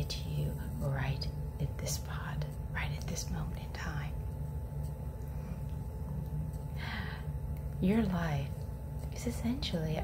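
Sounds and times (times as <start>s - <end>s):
woman speaking: 0.0s - 4.2s, 6.0s - 10.0s
steady low hum: 0.0s - 10.0s.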